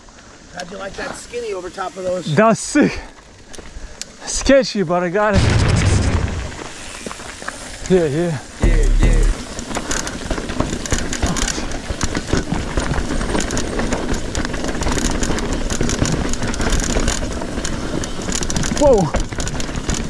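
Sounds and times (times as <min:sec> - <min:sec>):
bike rattling on rocky trail: 0:00.0 - 0:05.4, 0:06.3 - 0:20.0
person shouting: 0:08.6 - 0:09.4.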